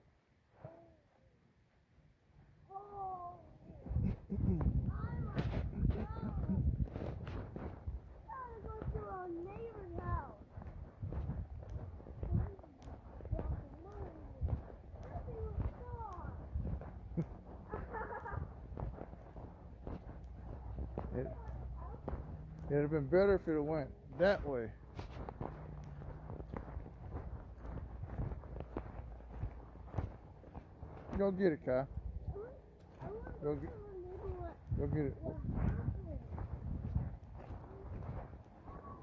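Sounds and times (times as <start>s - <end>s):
steady low rumble: 3.8s - 31.1s.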